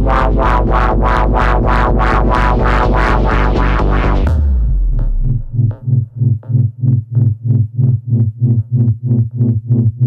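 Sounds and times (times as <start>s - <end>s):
techno music with pulsing synth bass: 0.0s - 10.0s.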